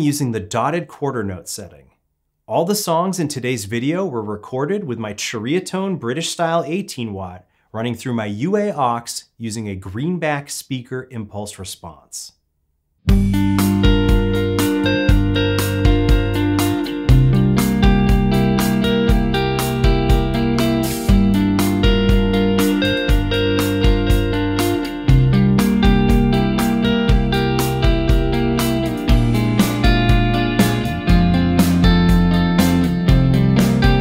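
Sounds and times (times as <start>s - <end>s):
electric guitar with delay: 13.1s - 34.0s
rhythmic backing: 13.1s - 34.0s.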